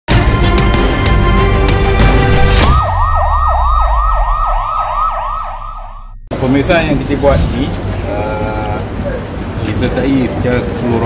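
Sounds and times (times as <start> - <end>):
intro music: 0.1 - 7.9
yelping siren: 2.6 - 6.3
low rumble: 2.6 - 9.0.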